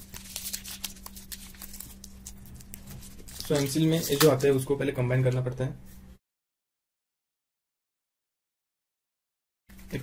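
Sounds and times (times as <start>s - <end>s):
wrapper crinkling: 0.0s - 4.6s.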